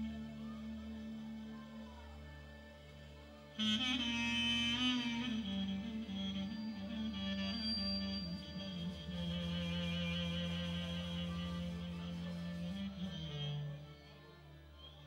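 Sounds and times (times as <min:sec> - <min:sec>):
clarinet melody: 0:00.0 - 0:15.0.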